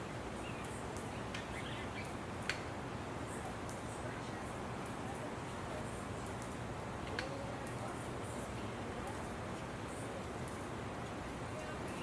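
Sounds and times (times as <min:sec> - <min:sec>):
faint bird chirps: 0:00.0 - 0:02.2
outdoor background noise: 0:00.0 - 0:12.0
light ticks: 0:00.6 - 0:02.7, 0:06.2 - 0:07.9.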